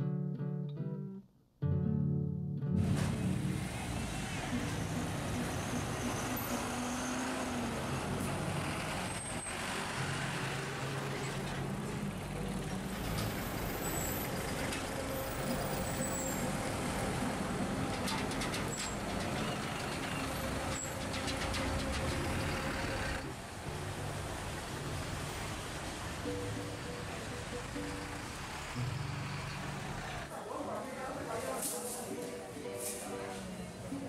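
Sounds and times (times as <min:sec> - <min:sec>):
street traffic engines: 0:02.8 - 0:34.0.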